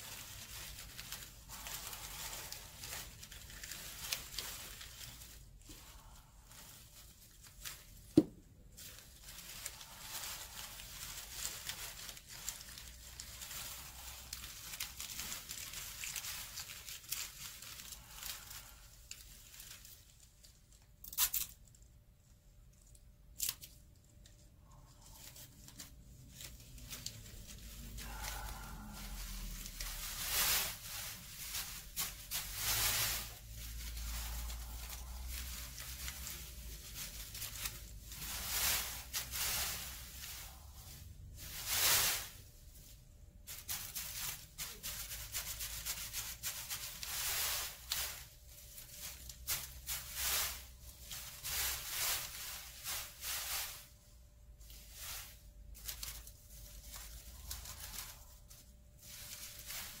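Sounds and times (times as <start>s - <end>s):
paper streamers rustling: 0.0s - 60.0s.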